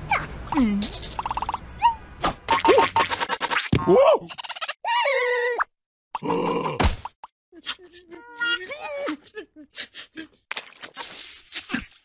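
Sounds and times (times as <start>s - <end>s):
cartoon character voices: 0.0s - 1.2s, 7.5s - 9.2s.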